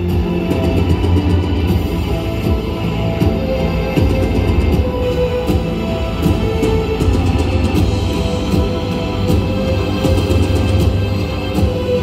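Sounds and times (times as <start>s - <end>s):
music over loudspeakers: 0.0s - 12.0s.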